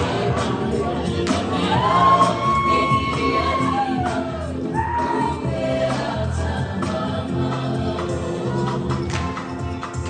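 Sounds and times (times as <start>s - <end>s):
group of voices singing: 0.0s - 9.7s.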